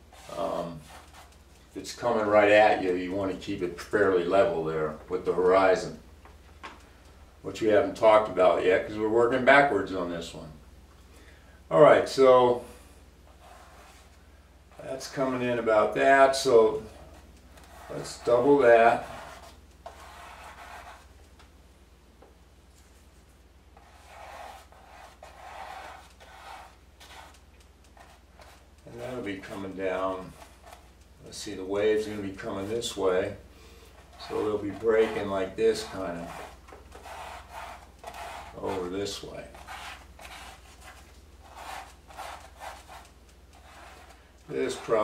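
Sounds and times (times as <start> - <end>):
low steady hum: 0.0 - 45.0
brush rubbing on canvas: 13.3 - 14.2, 16.9 - 21.2, 23.8 - 31.4, 33.9 - 45.0
paintbrush swishing on canvas: 22.8 - 30.8.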